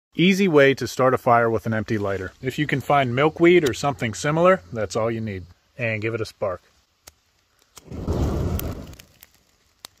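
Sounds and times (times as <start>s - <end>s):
fluff flashing into flame: 7.0s - 10.0s.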